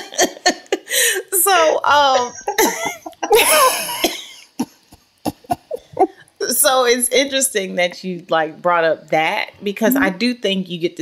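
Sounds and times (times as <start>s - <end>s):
woman laughing: 0.0s - 4.7s, 5.3s - 6.2s.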